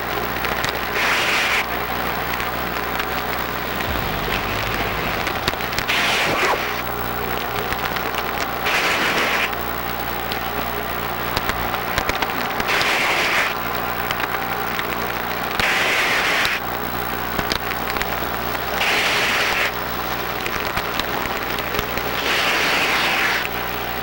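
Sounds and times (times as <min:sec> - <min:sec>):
steady low hum: 0:00.0 - 0:15.9.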